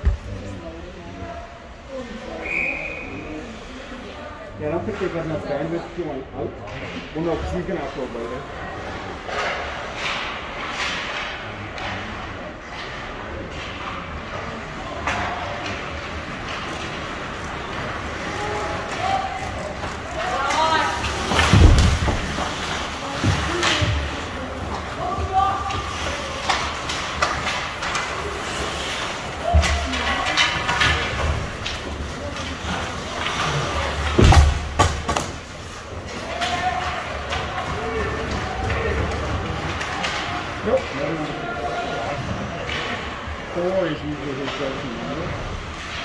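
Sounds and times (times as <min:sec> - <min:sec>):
knocks of sticks and puck: 0:08.9 - 0:43.6
thuds against rink boards: 0:21.0 - 0:24.1, 0:33.2 - 0:35.5.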